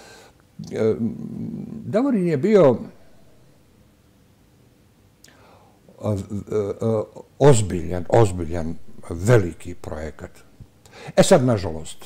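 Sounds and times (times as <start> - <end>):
soft intake of breath: 0.0 - 0.4, 5.2 - 5.9, 10.8 - 11.2
person speaking: 6.0 - 10.5, 11.1 - 12.0.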